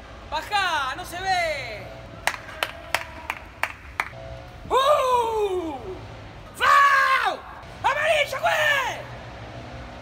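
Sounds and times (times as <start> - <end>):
person clapping hands: 2.2 - 4.2.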